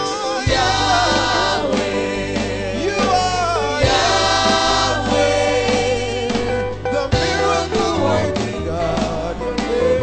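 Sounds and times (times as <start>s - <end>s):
choir singing gospel: 0.0s - 10.0s
steady bass accompaniment: 0.0s - 10.0s.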